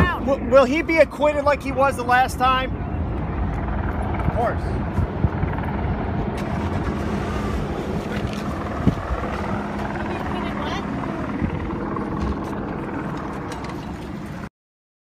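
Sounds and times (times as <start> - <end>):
engine hum: 0.0 - 14.5
street noise: 0.0 - 14.5.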